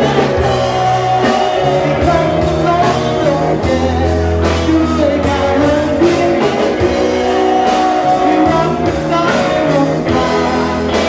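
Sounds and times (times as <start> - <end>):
bass: 0.0 - 11.0
electric guitar: 0.0 - 11.0
steady drum beat: 0.0 - 11.0.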